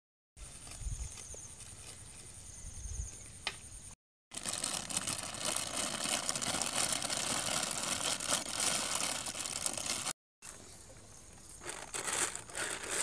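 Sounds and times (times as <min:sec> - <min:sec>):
plastic bag crinkling: 0:04.3 - 0:10.2.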